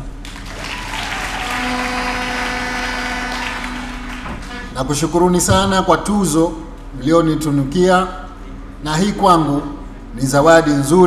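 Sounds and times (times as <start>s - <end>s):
audience applause: 0.2s - 4.7s.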